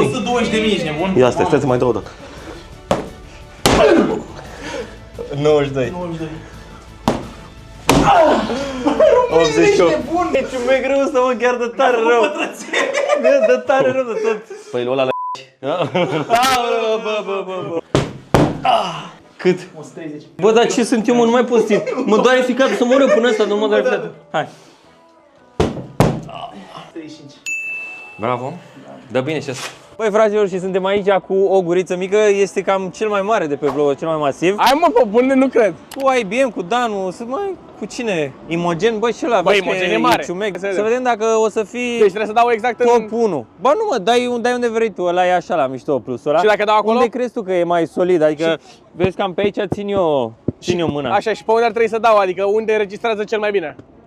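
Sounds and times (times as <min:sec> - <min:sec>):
glove punching strike shield: 0:02.9 - 0:04.2, 0:07.0 - 0:08.2, 0:18.0 - 0:18.7, 0:25.6 - 0:26.3.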